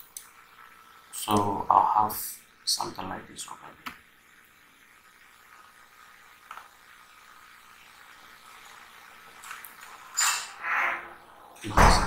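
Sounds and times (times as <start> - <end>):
microphone background hiss: 0.0 - 4.8, 10.1 - 12.0.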